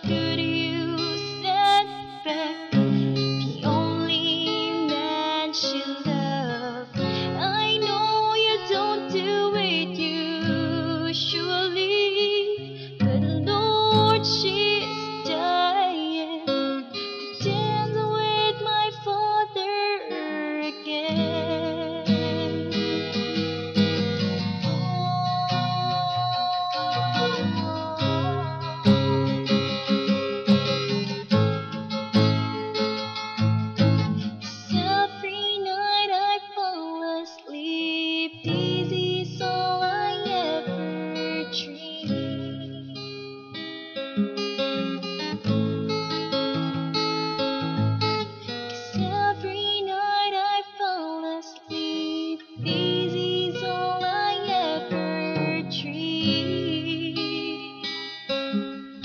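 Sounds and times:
woman singing a ballad: 0.0 - 31.2, 32.1 - 58.9
strummed acoustic guitar: 0.0 - 37.6, 38.3 - 50.8, 51.5 - 59.0.

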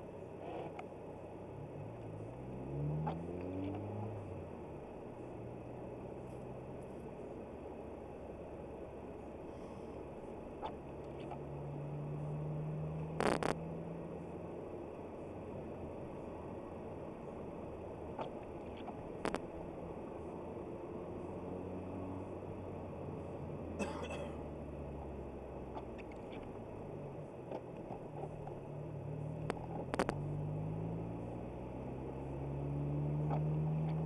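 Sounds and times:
car engine and tyre noise: 0.0 - 34.0.

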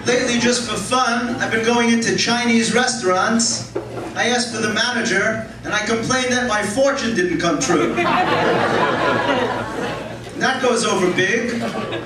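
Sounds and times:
audience laughing: 7.8 - 10.4, 11.4 - 12.0.

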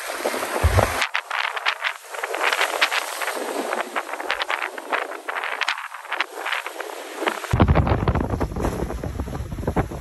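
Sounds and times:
sea washing in shallows: 0.0 - 10.0
wind buffeting microphone: 0.0 - 10.0.

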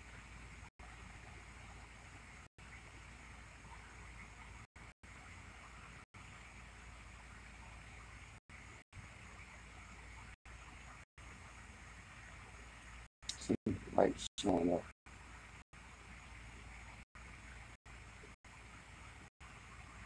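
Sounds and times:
faint steady hiss: 0.0 - 20.0.

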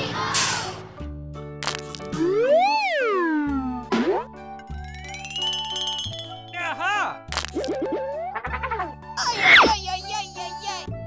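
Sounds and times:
cheerful children's music: 2.6 - 11.0.

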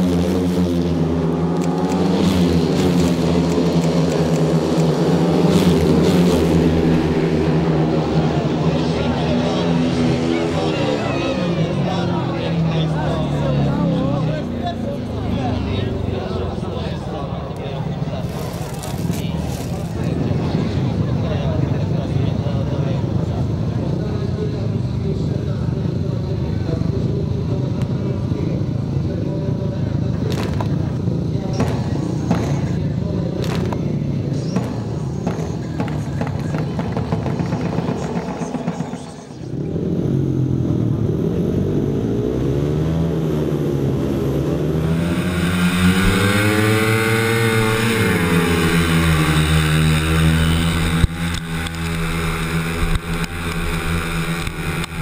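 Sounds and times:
sharp claps: 33.4 - 33.8
motorcycle engine falling in pitch: 44.7 - 55.0.

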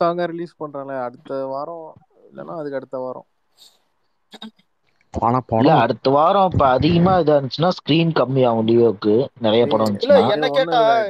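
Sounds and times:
man making wordless vocal sounds: 9.2 - 11.0.

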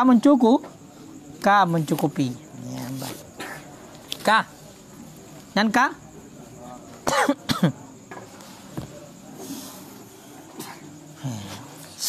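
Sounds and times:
man clearing his throat: 3.4 - 3.7, 7.0 - 7.9.

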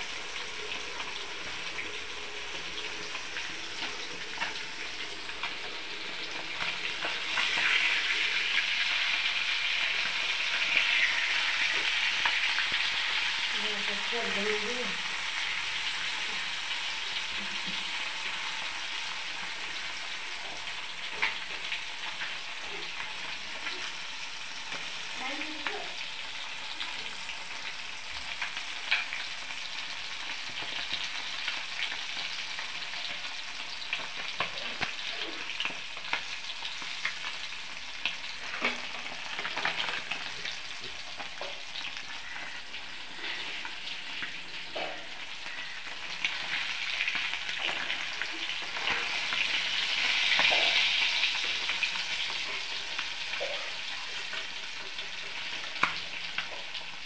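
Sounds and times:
fish sizzling in hot oil: 0.0 - 57.0.

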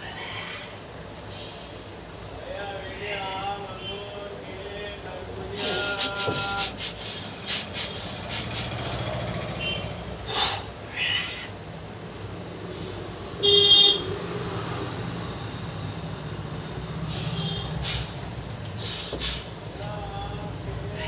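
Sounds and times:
traffic hum: 0.0 - 21.0
vehicle horn: 13.4 - 14.2, 17.3 - 17.8.

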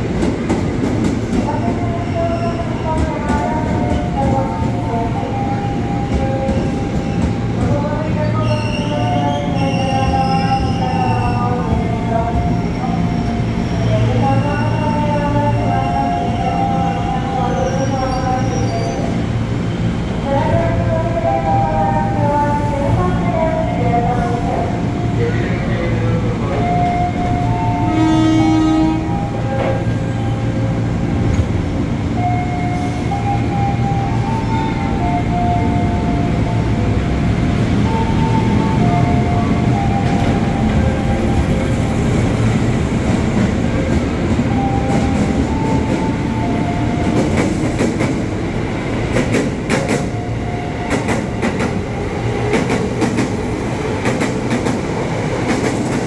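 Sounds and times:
train equipment humming: 0.0 - 56.0
horn-like tone: 27.7 - 29.4.

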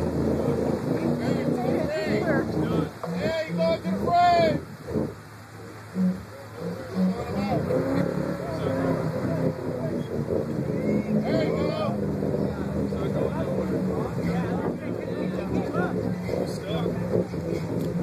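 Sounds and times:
people talking: 0.0 - 18.0
vehicle engine running: 0.0 - 18.0.

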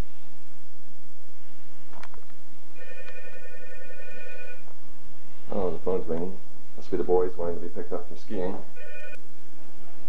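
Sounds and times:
telephone ringing: 2.8 - 4.6, 8.8 - 9.2.

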